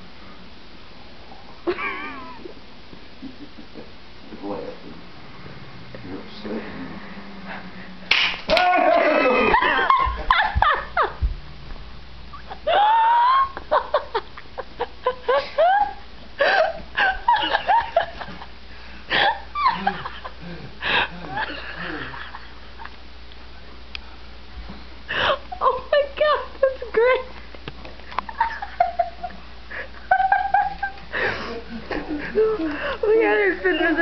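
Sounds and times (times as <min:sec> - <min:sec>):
short high falling cry: 0:08.5 - 0:09.7
person laughing in squeals: 0:08.8 - 0:11.1, 0:12.4 - 0:14.2, 0:15.0 - 0:17.6, 0:19.1 - 0:22.2.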